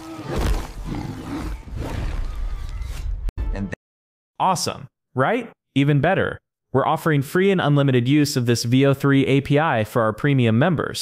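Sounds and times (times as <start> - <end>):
monster roaring and growling: 0.0 - 2.9.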